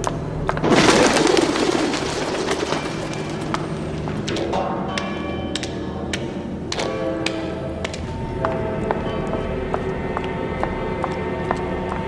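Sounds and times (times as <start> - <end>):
pigeons wing flaps: 0.6 - 3.9.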